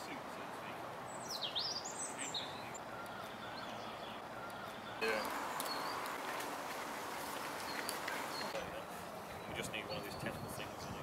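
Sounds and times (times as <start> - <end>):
outdoor background noise: 0.0 - 11.0
songbird singing: 0.0 - 11.0.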